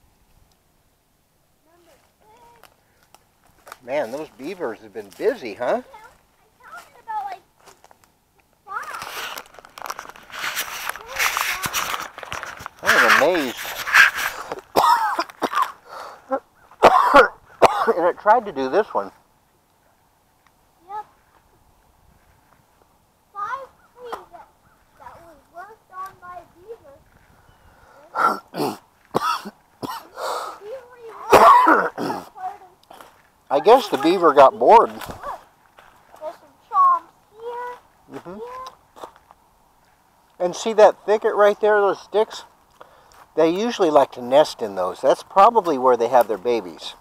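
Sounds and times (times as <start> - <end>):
hand handling camera: 8.8 - 14.7
person coughing: 14.7 - 16.0, 16.8 - 18.1, 28.1 - 30.6, 31.3 - 32.3.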